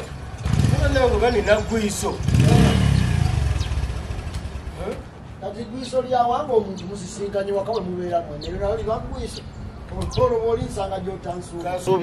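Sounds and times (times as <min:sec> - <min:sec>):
motorcycle engine rumbling: 0:00.0 - 0:06.0.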